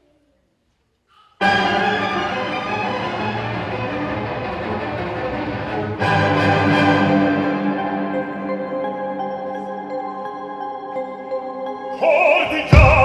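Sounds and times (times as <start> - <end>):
orchestral string music: 1.4 - 13.0.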